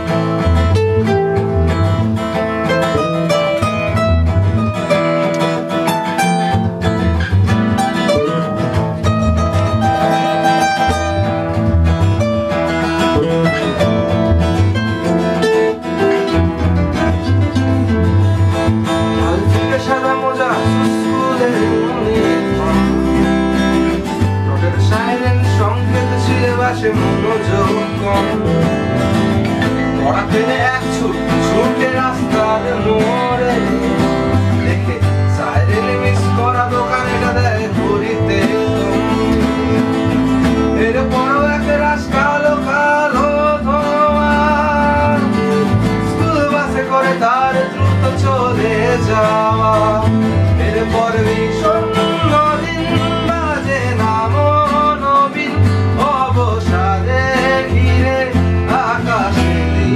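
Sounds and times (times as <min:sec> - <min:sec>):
acoustic guitars playing: 0:00.0 - 0:59.9
electric bass guitar: 0:00.0 - 0:59.9.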